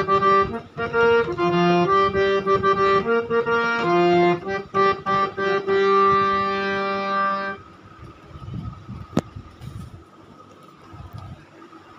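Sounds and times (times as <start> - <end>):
held instrumental chord: 0.0 - 7.8.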